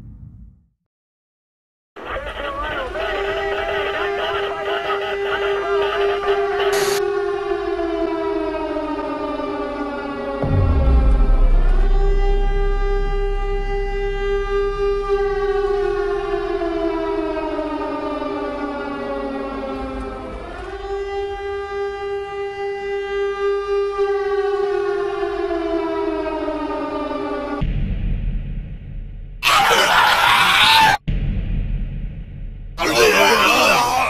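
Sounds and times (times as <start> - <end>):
air-raid siren wailing: 2.0 - 27.6, 29.4 - 31.0, 32.8 - 34.0.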